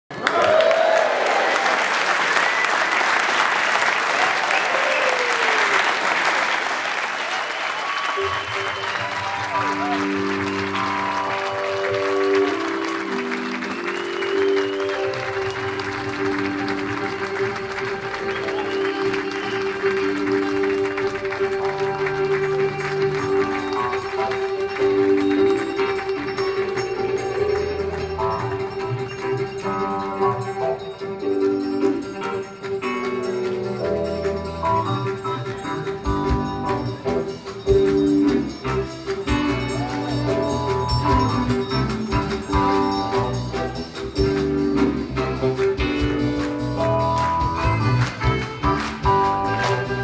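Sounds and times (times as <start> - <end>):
audience applauding and cheering: 0.1 - 50.0
keyboard chords: 8.2 - 50.0.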